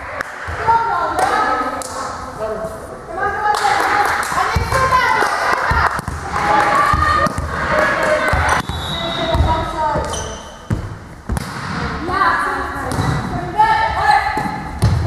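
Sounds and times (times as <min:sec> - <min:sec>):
players calling out in echoing hall: 0:00.0 - 0:15.0
volleyball thuds: 0:08.3 - 0:12.0, 0:14.3 - 0:15.0.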